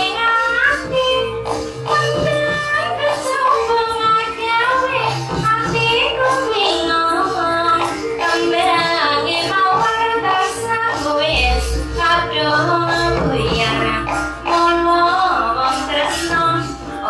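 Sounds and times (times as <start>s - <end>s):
gamelan music: 0.0s - 17.0s
woman singing high melody: 0.0s - 17.0s
steady held tone: 11.3s - 15.6s.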